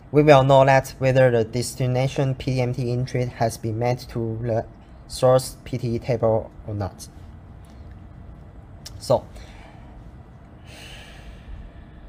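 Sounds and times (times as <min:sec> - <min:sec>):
faint room hum: 0:00.0 - 0:12.0
breath into microphone: 0:09.3 - 0:12.0.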